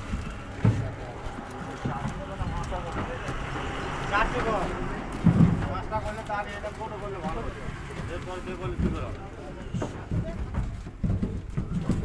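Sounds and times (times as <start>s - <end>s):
low hollow knocks and thumps: 0.0s - 12.0s
voices talking: 0.0s - 12.0s.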